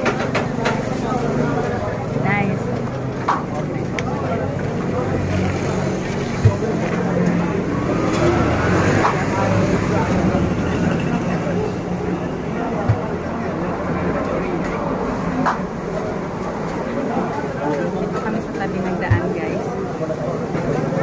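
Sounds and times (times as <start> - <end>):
road traffic hum: 0.0 - 21.0
voices talking: 0.0 - 21.0.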